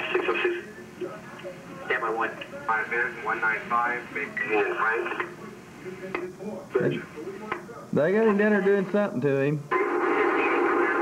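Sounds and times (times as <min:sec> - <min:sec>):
dispatch voice over scanner radio: 0:01.8 - 0:05.3.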